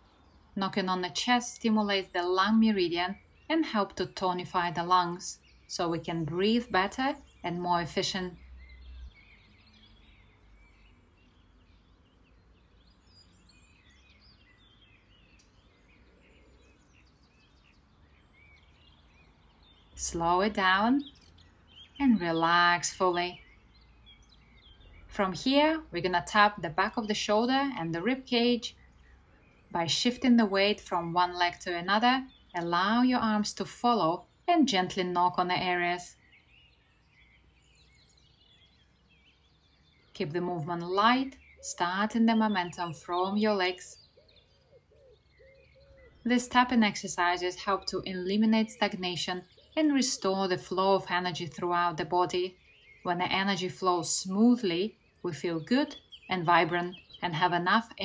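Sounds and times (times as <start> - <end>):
small birds chirping and warbling: 0.0 - 58.0.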